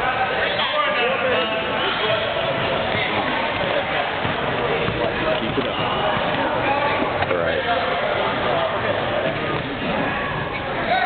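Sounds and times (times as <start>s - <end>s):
crowd chatting: 0.0s - 11.0s.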